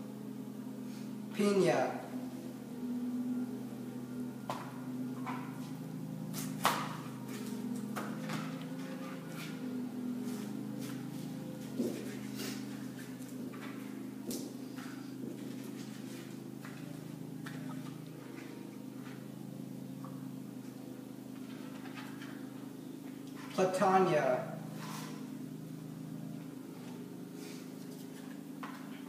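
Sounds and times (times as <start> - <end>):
steady low hum: 0.0 - 29.0.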